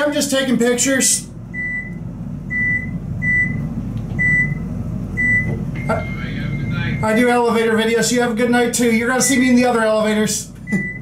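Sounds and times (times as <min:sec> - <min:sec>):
low steady hum: 0:00.0 - 0:11.0
emergency phone beeping: 0:05.2 - 0:07.4
long steady tone: 0:05.2 - 0:07.5.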